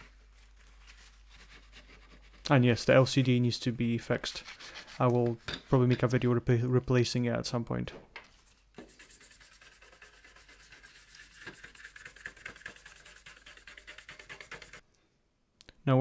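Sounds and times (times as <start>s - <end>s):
toothbrush scrubbing circuit board: 8.9s - 14.8s.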